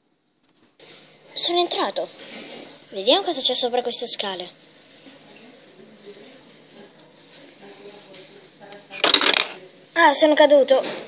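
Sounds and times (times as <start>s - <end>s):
faint background murmur: 0.8s - 11.0s
plastic toy clatter: 9.0s - 9.6s.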